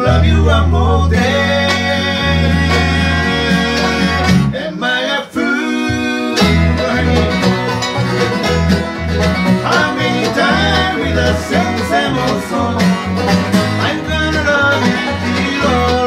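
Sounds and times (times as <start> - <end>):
electric bass line: 0.0 - 4.7, 5.8 - 16.0
mandolin: 0.0 - 4.7, 5.5 - 16.0
acoustic guitar: 0.0 - 16.0
banjo: 0.0 - 16.0
fiddle: 6.3 - 16.0.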